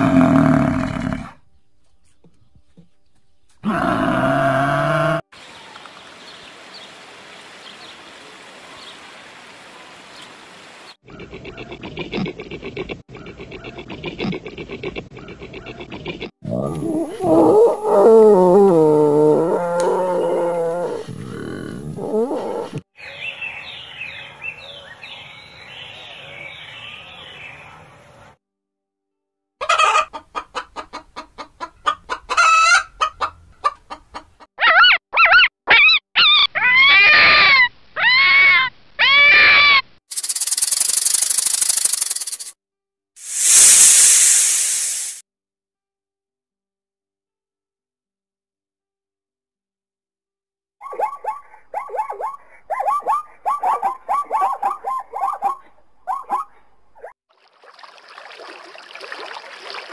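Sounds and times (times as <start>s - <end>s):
steady hiss: 43.2s - 45.2s.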